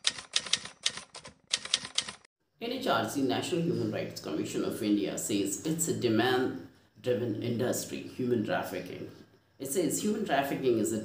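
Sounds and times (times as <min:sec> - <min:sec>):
typewriter key clacks: 0:00.0 - 0:02.3.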